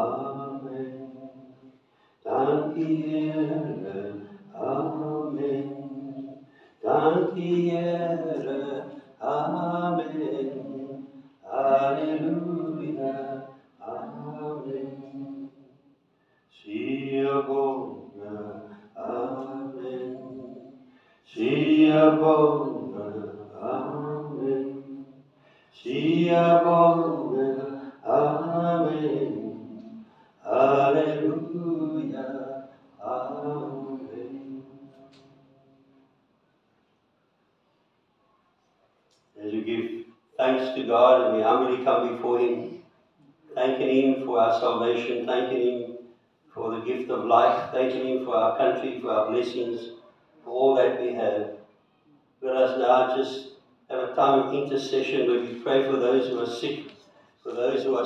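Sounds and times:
man chanting: 0.0 - 1.4, 2.2 - 15.4, 16.6 - 20.7, 21.3 - 24.9, 25.8 - 34.9, 39.4 - 42.8, 43.5 - 45.9, 46.5 - 51.5, 52.4 - 58.0.

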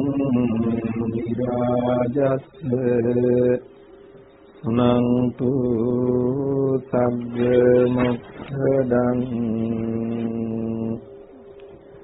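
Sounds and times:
monk chanting: 0.0 - 3.6, 4.6 - 11.0.

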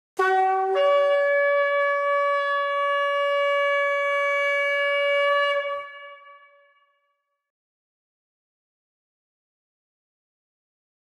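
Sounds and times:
ram's horn blast: 0.2 - 6.6.

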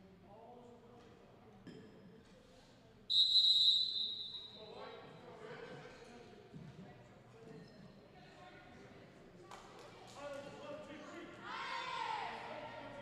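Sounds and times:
referee whistle blast: 3.1 - 4.6.

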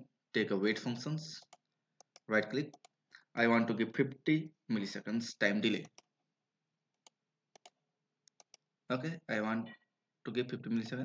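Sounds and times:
computer mouse clicking: 1.4 - 3.0, 7.0 - 8.6.

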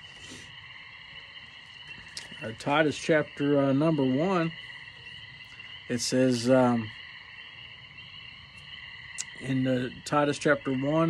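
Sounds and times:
chorus of small animals calling: 0.0 - 11.0.

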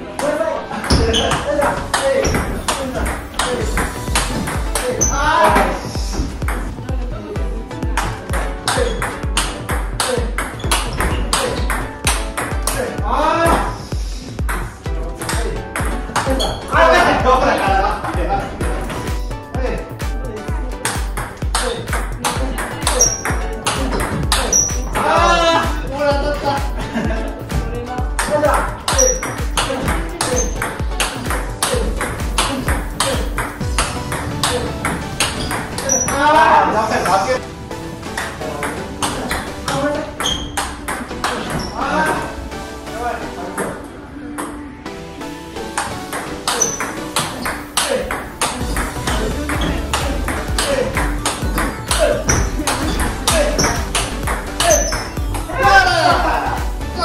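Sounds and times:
background music with bass beat: 0.9 - 57.0.

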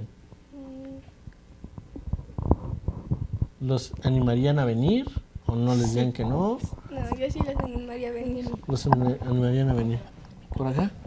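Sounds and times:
microphone handling thumps: 1.6 - 5.6, 6.2 - 10.6.

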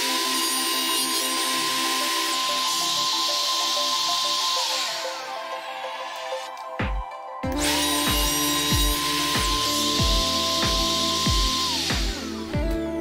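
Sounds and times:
router cutting wood hiss: 0.0 - 6.8, 7.5 - 12.6
background music with beat: 5.0 - 13.0.

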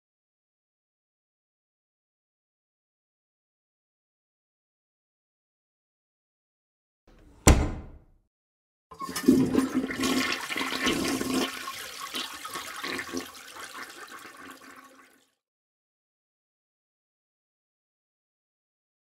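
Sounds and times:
toilet flushing: 8.9 - 15.4.

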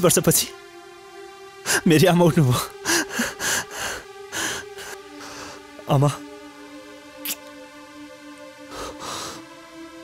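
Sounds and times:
man sobbing breaths: 2.7 - 5.7, 8.7 - 9.5.

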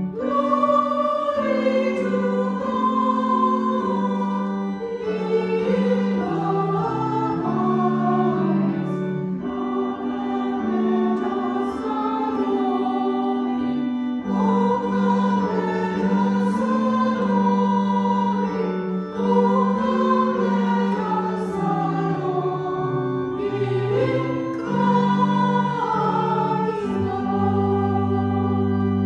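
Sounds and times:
choir singing a hymn: 0.0 - 29.0
held organ chord: 0.0 - 29.0.

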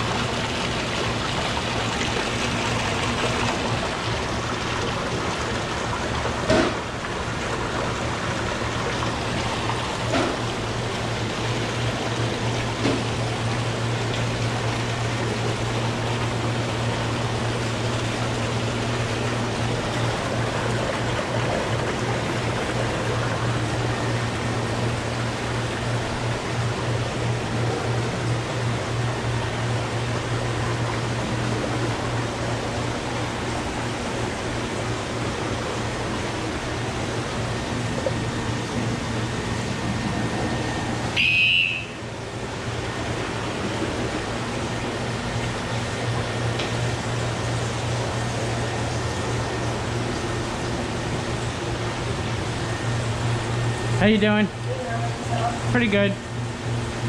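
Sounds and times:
low hum of aquarium pumps: 0.0 - 57.0
running and bubbling water: 0.0 - 57.0.

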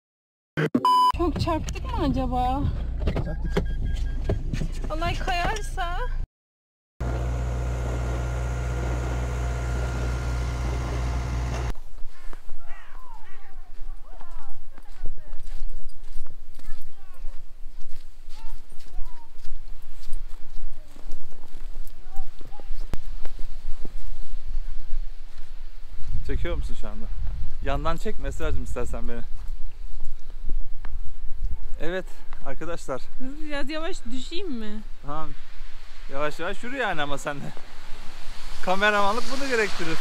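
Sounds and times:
footsteps crunching through snow: 13.4 - 26.3.

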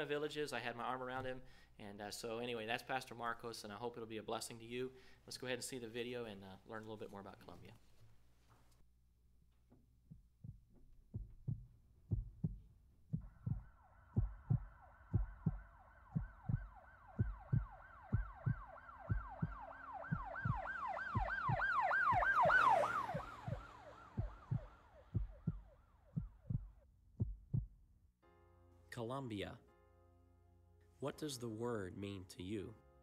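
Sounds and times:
heartbeat thumps: 9.7 - 27.9
warbling siren: 13.6 - 25.9.

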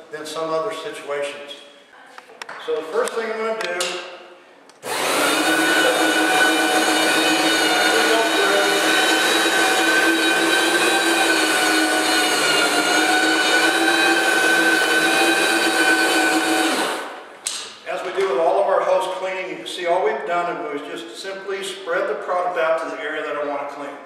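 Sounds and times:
floor cleaning machine running: 4.8 - 17.2.

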